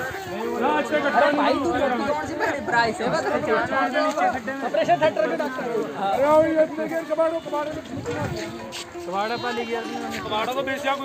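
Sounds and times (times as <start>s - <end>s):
overlapping voices chattering: 0.0s - 11.0s.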